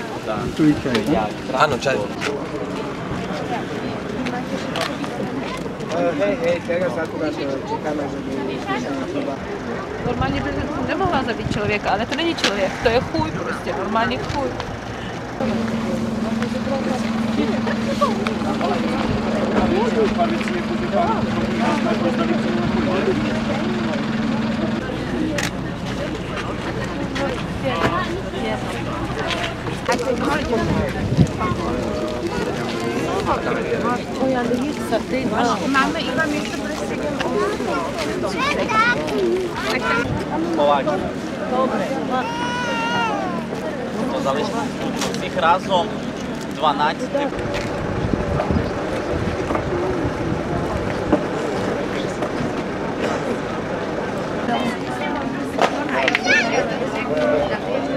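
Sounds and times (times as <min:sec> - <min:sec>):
people talking: 0:00.0 - 0:57.9
vehicle engine idling: 0:07.8 - 0:56.1
wind buffeting microphone: 0:10.0 - 0:12.2, 0:30.3 - 0:32.6, 0:47.3 - 0:51.8.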